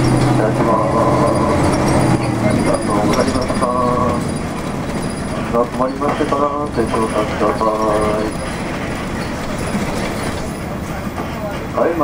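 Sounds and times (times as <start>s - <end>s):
diesel engine drone: 0.0s - 12.0s
road noise: 0.0s - 12.0s.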